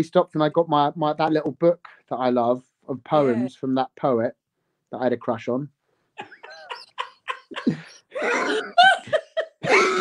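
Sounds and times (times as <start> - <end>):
people laughing: 6.3 - 10.0.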